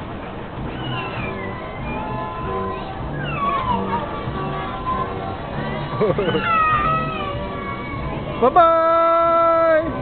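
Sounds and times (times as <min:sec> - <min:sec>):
carousel music: 0:00.0 - 0:10.0
high wavering squeal: 0:00.6 - 0:07.5.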